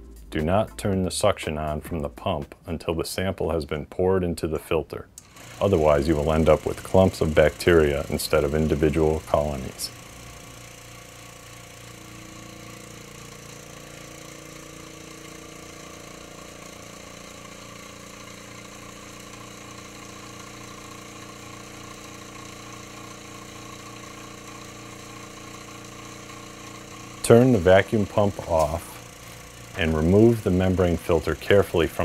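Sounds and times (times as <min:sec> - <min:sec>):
vacuum pump motor hum: 0:05.2 - 0:32.0.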